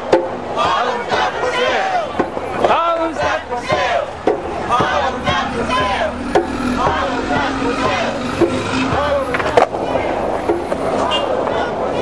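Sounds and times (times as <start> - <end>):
city street noise: 0.0 - 12.0
passers-by voices: 0.0 - 12.0
sharp knocks or clatters: 3.7 - 7.5.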